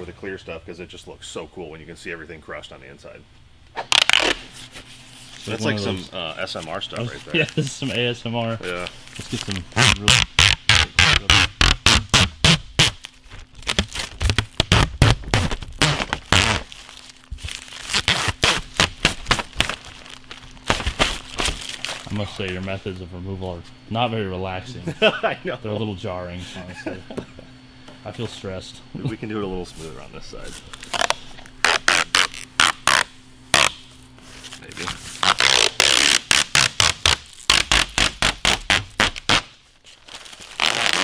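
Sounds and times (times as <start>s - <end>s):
plastic film peeling and crackling: 3.8s - 23.1s, 30.4s - 41.0s.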